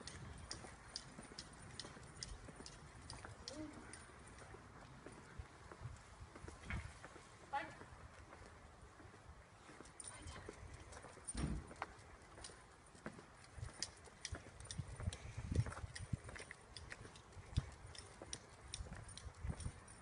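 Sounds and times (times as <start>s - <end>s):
dog claws clicking: 0.0s - 4.0s, 13.4s - 20.0s
footsteps on pavement: 0.0s - 20.0s.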